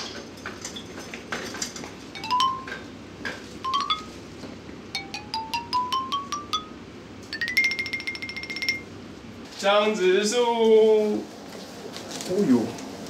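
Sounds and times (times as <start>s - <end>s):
background music of struck notes: 2.2s - 2.9s, 5.0s - 6.8s.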